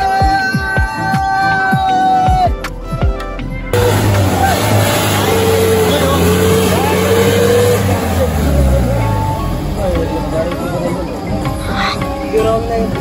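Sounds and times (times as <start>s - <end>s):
vehicle engine droning in mud: 3.8s - 13.0s.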